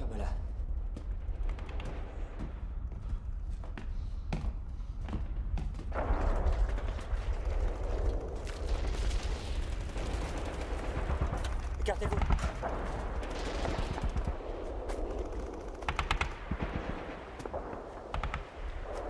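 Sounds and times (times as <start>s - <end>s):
dense gunfire: 5.9s - 19.0s
machine-gun fire: 8.6s - 18.6s.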